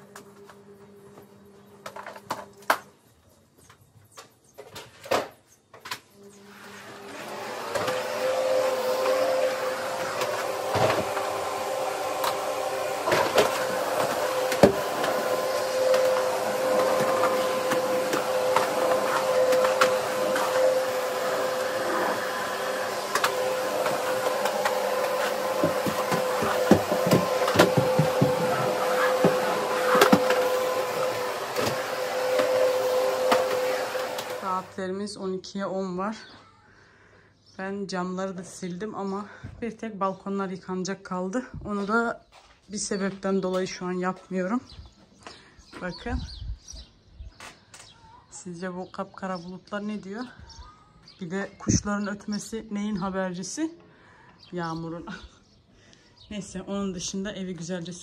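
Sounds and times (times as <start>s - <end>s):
vacuum cleaner motor whining: 0.0s - 2.8s, 6.2s - 34.8s.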